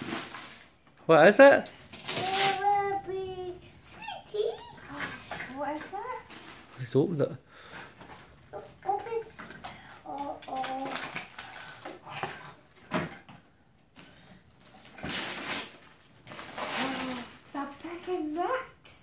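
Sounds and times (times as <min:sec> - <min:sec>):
wrapping paper rustling: 0:01.9 - 0:03.0, 0:10.1 - 0:12.1, 0:14.6 - 0:18.5.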